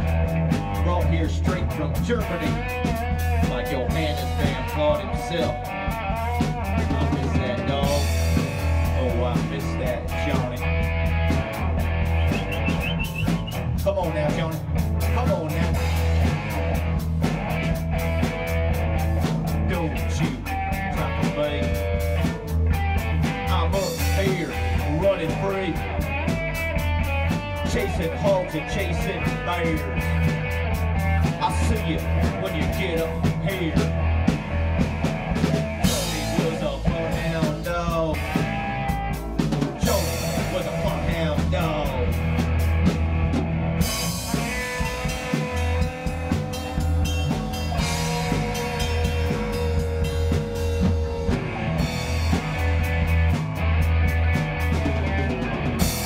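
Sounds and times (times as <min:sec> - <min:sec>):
bass guitar: 0:00.0 - 0:56.0
electric guitar lead: 0:00.0 - 0:56.0
rock band playing: 0:00.0 - 0:56.0
steady drum beat: 0:00.0 - 0:56.0.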